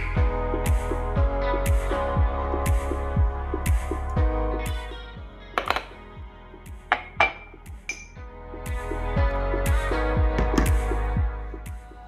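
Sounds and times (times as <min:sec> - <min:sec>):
soft background music: 0:00.0 - 0:12.0
spoon clinking against mug: 0:05.6 - 0:05.9, 0:06.9 - 0:08.2.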